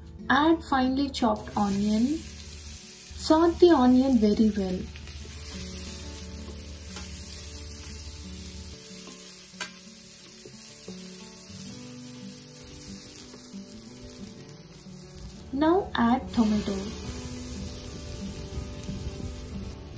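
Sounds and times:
onion frying hiss: 1.4s - 19.9s.

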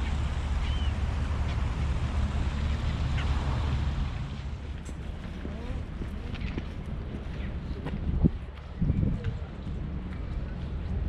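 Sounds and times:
faint high calls: 0.0s - 1.1s
low rumble and hiss: 0.0s - 11.0s.

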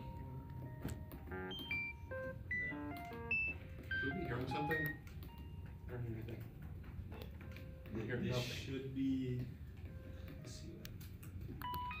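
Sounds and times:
low electrical hum: 0.0s - 12.0s
electronic beeps: 1.3s - 5.6s, 11.6s - 12.0s.

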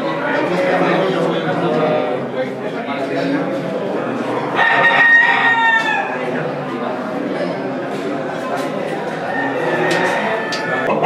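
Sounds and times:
rooster crowing: 4.6s - 6.2s, 9.3s - 11.0s.

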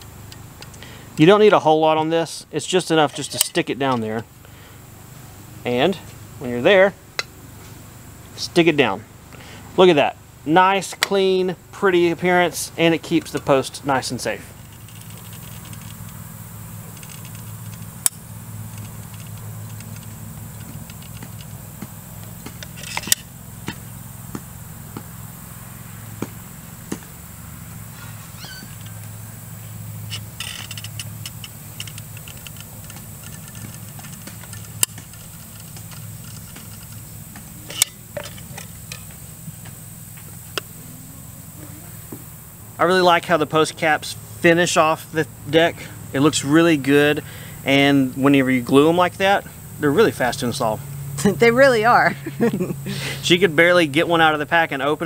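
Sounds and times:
steady low hum: 0.0s - 55.0s
metal caps set on wooden posts: 3.0s - 4.2s, 10.8s - 11.3s, 16.9s - 23.8s, 30.1s - 40.7s.

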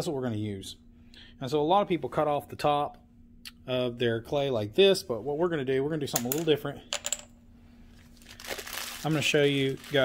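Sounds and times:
plastic crinkling: 8.0s - 10.0s.

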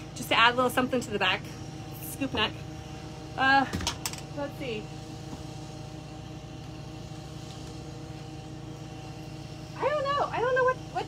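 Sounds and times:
steady machine hum: 0.0s - 11.0s
woman speaking: 9.8s - 11.0s.

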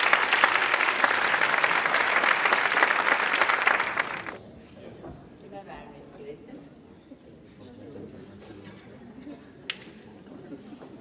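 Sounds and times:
faint murmur of voices: 4.4s - 11.0s.

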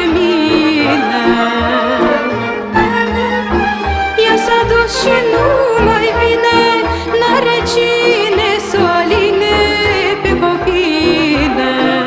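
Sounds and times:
folk band playing: 0.0s - 12.0s.

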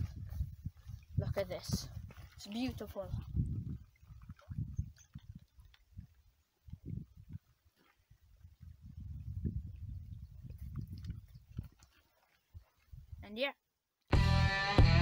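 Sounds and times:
wind buffeting microphone: 0.0s - 13.2s.

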